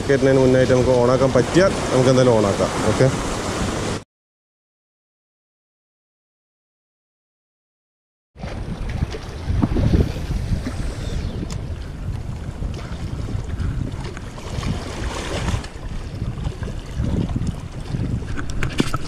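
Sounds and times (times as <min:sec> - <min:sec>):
wind buffeting microphone: 0:08.4 - 0:19.0
small waves washing against rocks: 0:13.2 - 0:19.0.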